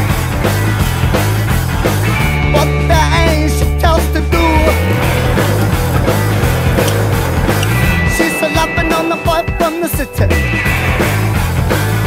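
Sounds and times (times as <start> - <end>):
steady bass line: 0.0 - 12.0
distorted rock guitar: 0.1 - 12.0.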